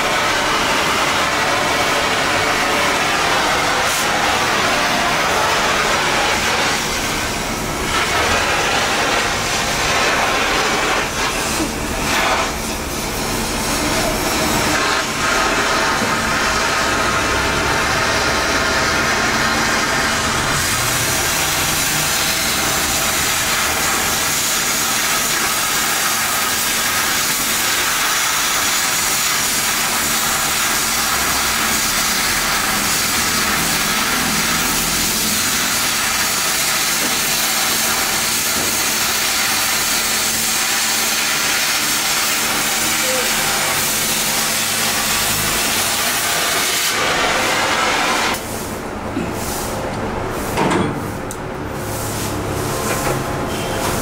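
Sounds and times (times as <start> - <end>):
cutting torch hissing: 0.0 - 49.9.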